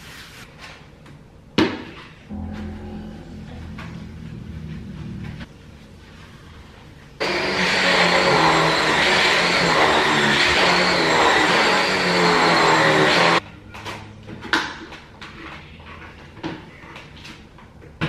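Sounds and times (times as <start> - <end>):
vacuum cleaner whining: 2.3 - 5.5, 7.2 - 13.4.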